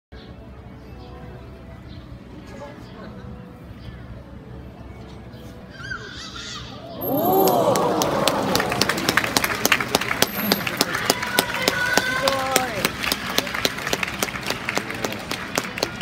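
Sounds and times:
crowd chatter: 0.2s - 5.7s, 6.7s - 16.0s
audience clapping: 7.0s - 16.0s.

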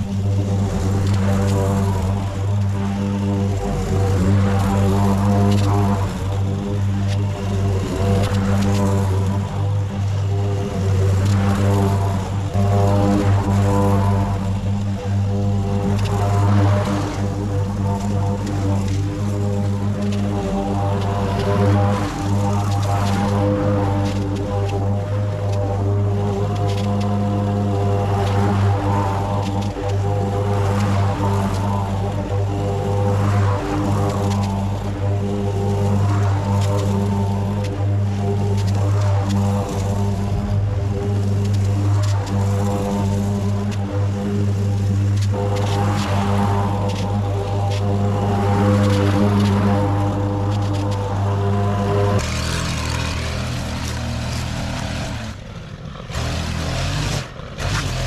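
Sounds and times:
string trimmer engine running: 0.0s - 58.0s
trimmer line cutting grass: 0.0s - 58.0s.

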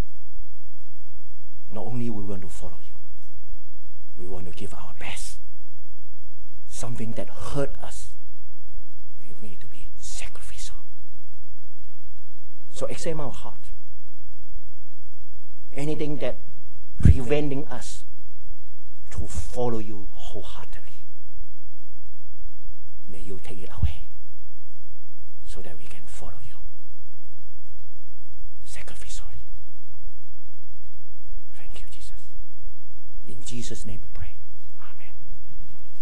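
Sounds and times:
steady low hum: 0.0s - 36.0s
man whispering: 1.7s - 3.1s, 4.2s - 5.5s, 6.7s - 8.2s, 9.2s - 11.0s, 12.7s - 13.8s, 15.7s - 16.4s, 17.0s - 18.1s, 19.0s - 21.1s, 23.1s - 24.2s, 25.4s - 26.8s, 28.6s - 29.6s, 31.5s - 32.4s, 33.2s - 35.6s.

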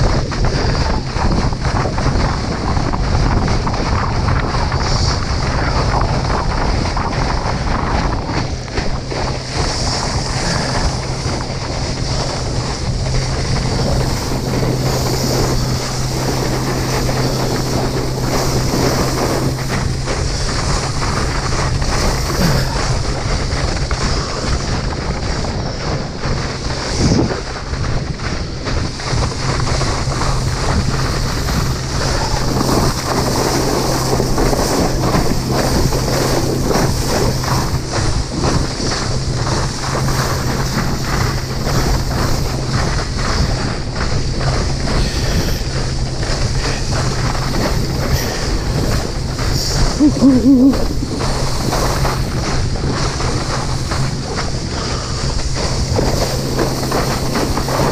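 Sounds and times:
steady low hum: 0.0s - 57.9s
water rushing and spraying: 0.0s - 57.9s
wind buffeting microphone: 0.0s - 57.9s.

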